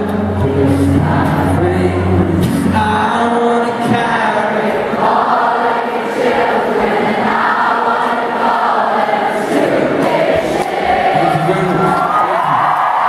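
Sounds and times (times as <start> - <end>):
concert crowd singing along: 0.0 - 13.0.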